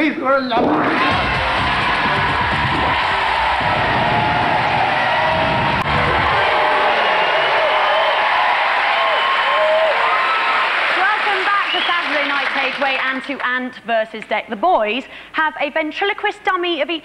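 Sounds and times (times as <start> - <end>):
television theme music: 0.5 - 8.2
studio audience cheering and applauding: 0.8 - 13.7.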